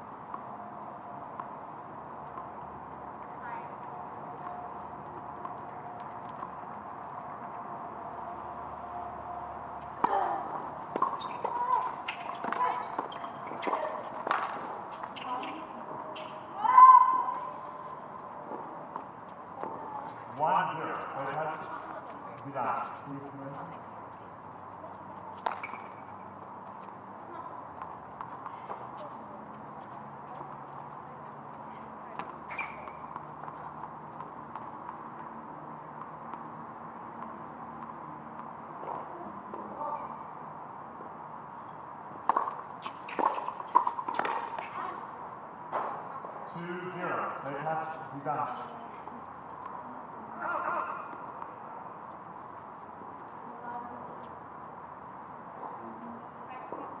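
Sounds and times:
tennis ball bouncing on hard court: 9.8 - 16.5, 17.2 - 23.0, 24.8 - 27.0, 27.8 - 35.3, 41.6 - 44.8, 45.7 - 46.3
people talking: 15.2 - 16.7.

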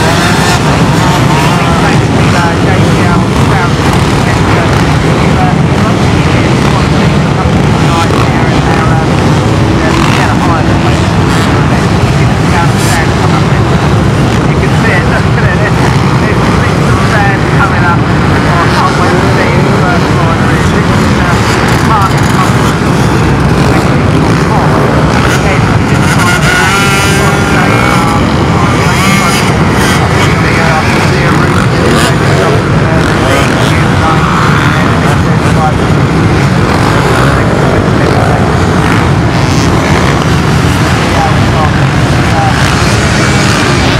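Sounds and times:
dirt bike engines droning: 0.0 - 43.9
nearby motorcycle engine revving: 0.0 - 43.9.

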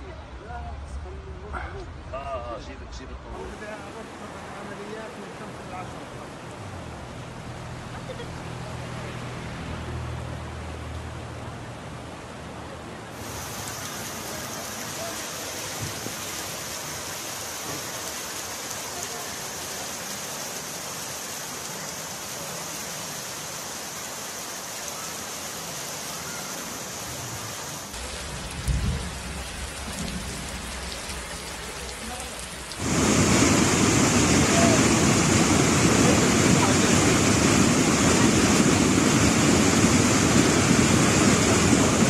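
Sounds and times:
floodwater rushing: 3.3 - 42.0
heavy rain falling: 3.4 - 42.0.

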